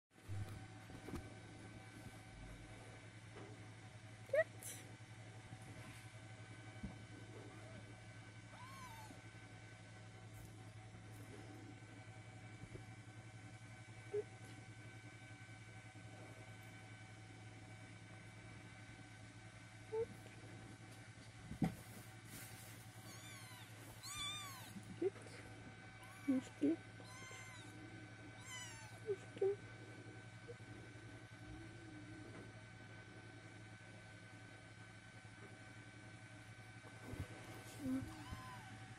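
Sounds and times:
kitten mewing: 8.5s - 9.2s, 23.1s - 25.2s, 26.0s - 27.8s, 28.4s - 29.6s, 37.8s - 38.8s.

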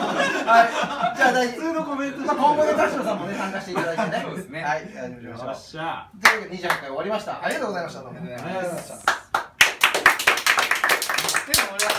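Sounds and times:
people clapping: 6.2s - 6.9s, 8.4s - 11.9s.

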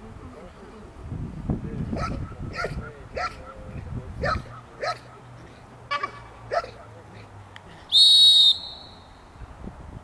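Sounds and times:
sharp whistle blast: 7.9s - 9.1s.

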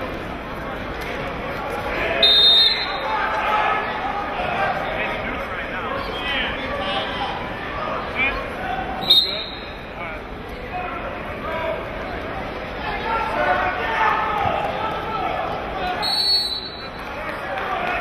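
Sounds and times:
people shouting and talking: 0.0s - 18.0s
referee's whistle blowing: 2.2s - 3.1s, 9.0s - 9.8s, 16.0s - 17.0s.

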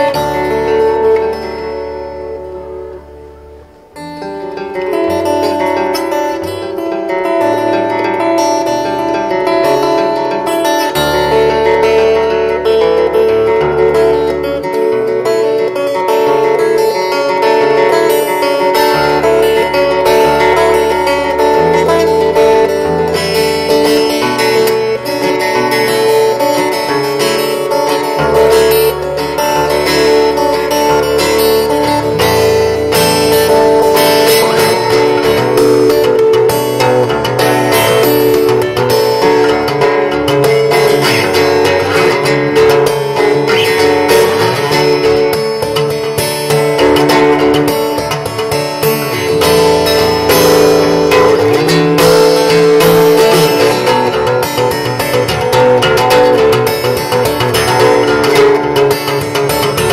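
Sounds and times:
fingerstyle acoustic guitar: 0.0s - 59.9s.

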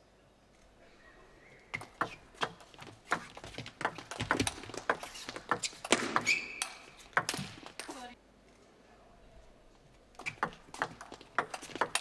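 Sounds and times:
table tennis ball clicking: 3.8s - 7.9s, 10.2s - 12.0s
high squeak: 5.0s - 6.9s.

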